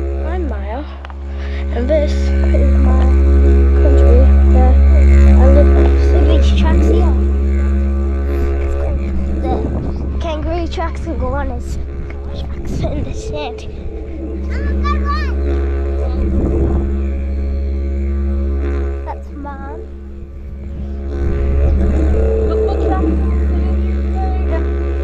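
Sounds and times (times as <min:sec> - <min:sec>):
didgeridoo drone: 0:00.0 - 0:25.0.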